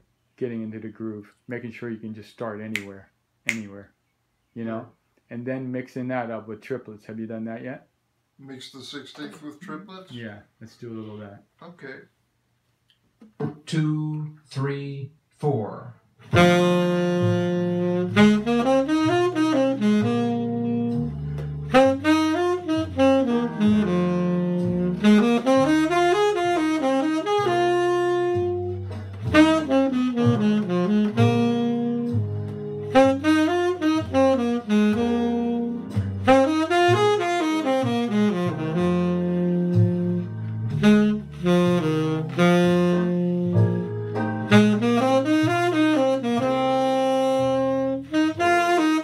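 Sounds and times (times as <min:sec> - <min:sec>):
tenor saxophone improvising: 0:16.2 - 0:49.0
backing track bass line: 0:16.3 - 0:49.0.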